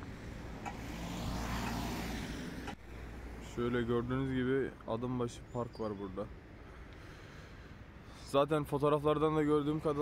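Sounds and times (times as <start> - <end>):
car passing close by: 0.0 - 3.4.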